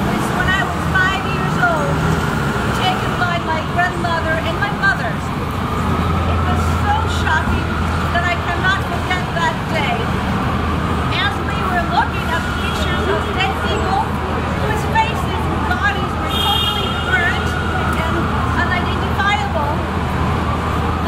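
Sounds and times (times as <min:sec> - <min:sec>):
woman reading aloud: 0:00.0 - 0:02.0, 0:02.7 - 0:05.3, 0:06.4 - 0:10.1, 0:11.1 - 0:19.8
street traffic: 0:00.0 - 0:21.0
truck engine rumble: 0:00.0 - 0:21.0.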